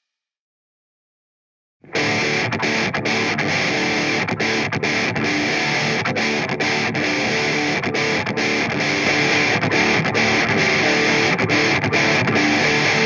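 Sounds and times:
rock guitars playing a riff: 0:01.9 - 0:13.0.

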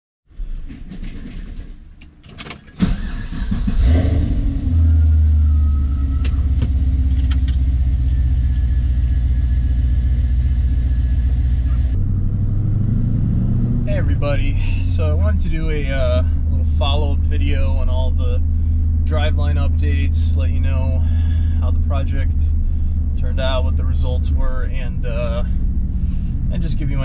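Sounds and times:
car engine starting and idling: 0:00.4 - 0:27.0.

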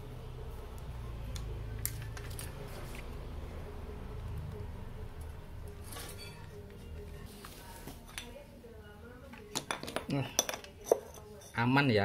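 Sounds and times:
low steady hum: 0:00.0 - 0:11.4.

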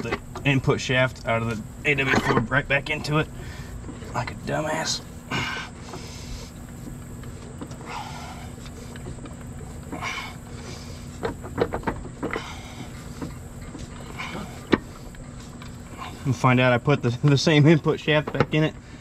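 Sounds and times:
steady low hum: 0:00.0 - 0:19.0
person breathing heavily: 0:03.3 - 0:03.9, 0:05.3 - 0:06.7, 0:07.8 - 0:09.1, 0:09.8 - 0:11.2, 0:12.3 - 0:15.1, 0:15.9 - 0:16.3.

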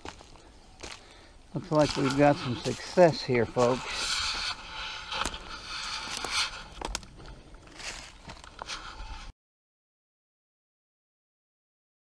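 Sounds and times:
footsteps crunching dry leaves: 0:00.0 - 0:09.2.

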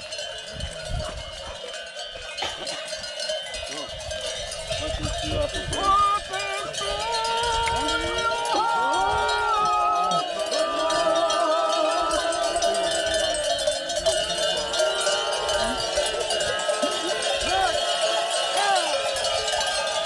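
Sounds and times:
sheep bells jangling: 0:00.0 - 0:20.0.

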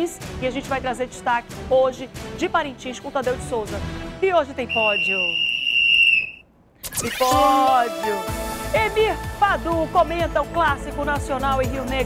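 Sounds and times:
music: 0:00.0 - 0:05.3, 0:06.9 - 0:12.0.

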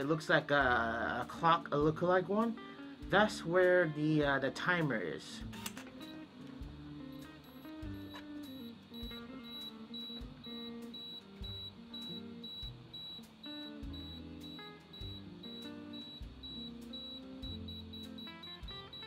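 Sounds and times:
camera self-timer beeping: 0:07.1 - 0:19.0.

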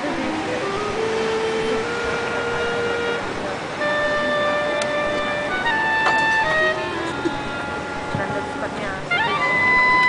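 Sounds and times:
background hiss: 0:00.0 - 0:10.0
clarinet notes: 0:00.0 - 0:10.0.

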